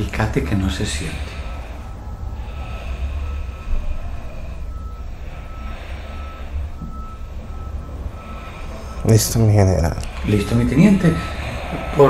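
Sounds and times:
faint high repeating beep: 0.0 - 12.0
low steady rumble: 0.0 - 12.0.

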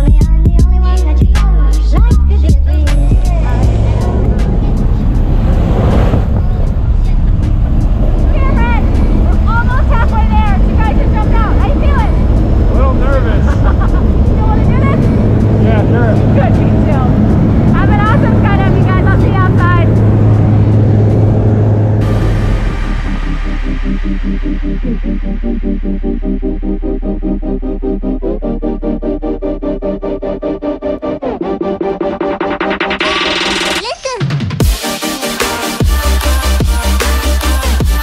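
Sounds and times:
plane engine drone: 1.9 - 33.6.

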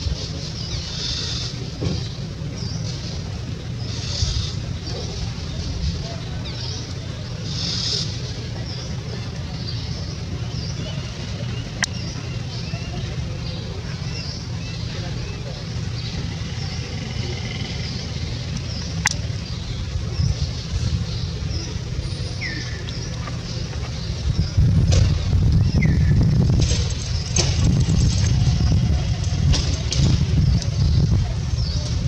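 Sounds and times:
steady low rumble: 0.0 - 32.0.

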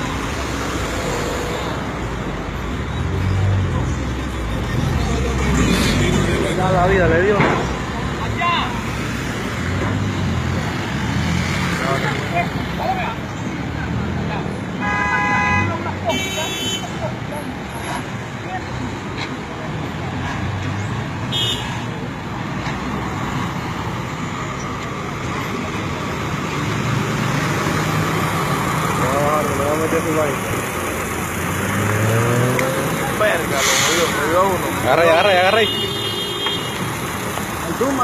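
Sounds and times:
vehicle engines running: 0.0 - 38.0
vehicle horn honking: 14.8 - 17.0, 21.3 - 21.8, 35.4 - 36.9.

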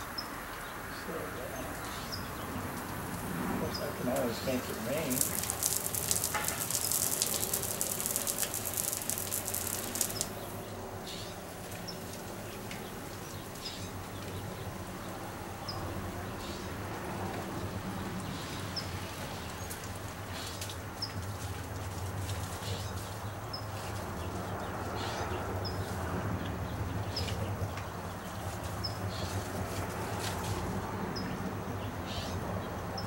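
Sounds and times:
garden hose spraying water: 0.0 - 32.3
bird chirping: 0.0 - 33.0.

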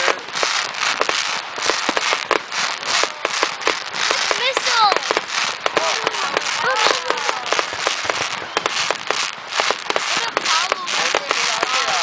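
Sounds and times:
fireworks popping and crackling: 0.0 - 12.0.

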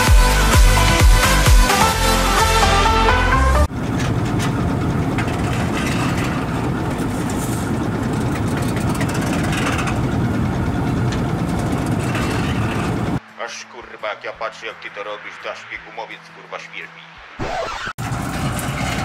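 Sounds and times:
electronic music: 0.0 - 3.7, 13.4 - 18.0
combine harvester running: 0.0 - 14.0, 18.0 - 19.0.

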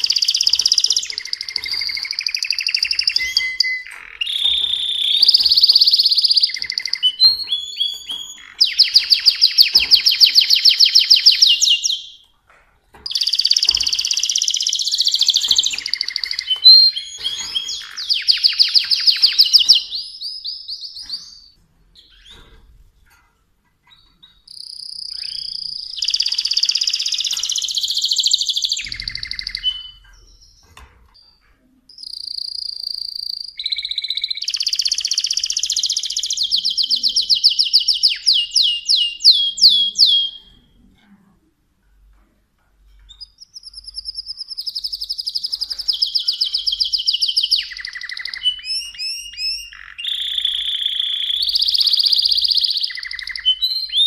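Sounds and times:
canary singing trills: 0.0 - 12.3, 13.0 - 22.7, 23.8 - 40.9, 43.0 - 54.0.

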